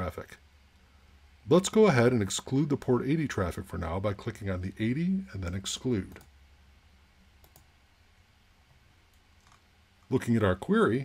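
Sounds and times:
computer mouse clicks: 7.4s - 7.7s.

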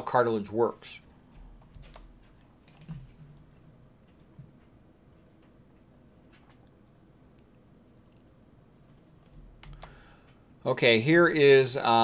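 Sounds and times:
computer keyboard clicks: 1.6s - 3.6s, 9.6s - 10.0s.

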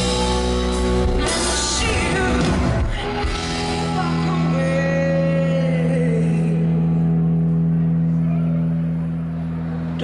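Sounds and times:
blues band holding low chord: 0.0s - 10.0s.

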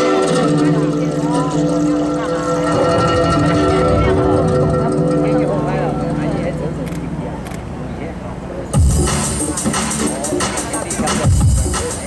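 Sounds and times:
guzheng notes: 0.0s - 6.5s.

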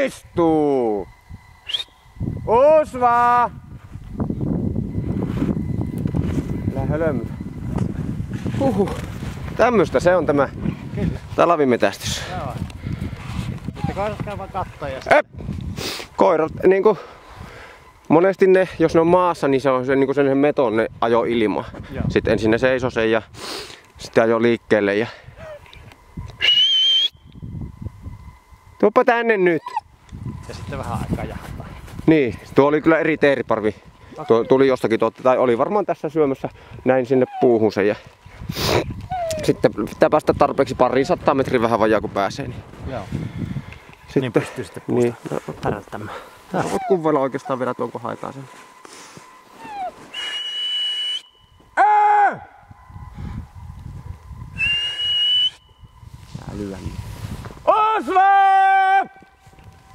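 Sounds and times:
whistle blasts: 0.0s - 3.6s, 26.3s - 27.6s, 49.2s - 53.1s, 54.5s - 56.1s
dog whistle blast: 1.6s - 2.0s, 26.4s - 27.3s, 49.6s - 51.6s, 54.6s - 55.8s.

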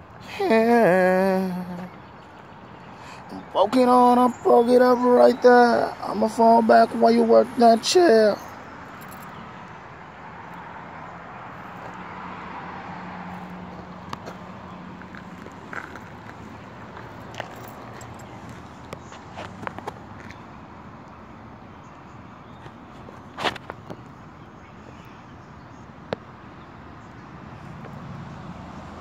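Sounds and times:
light clicks and rustles: 15.0s - 20.4s, 22.5s - 24.2s.

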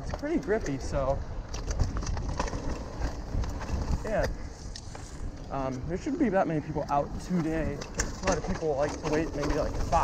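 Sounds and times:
bike clicks and rattles: 0.0s - 10.0s
bike tyres rumbling on dirt: 0.0s - 10.0s
wind on microphone: 0.0s - 10.0s.

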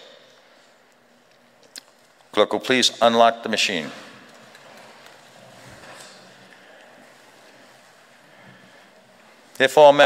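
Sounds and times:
steady low hiss: 0.0s - 10.0s.

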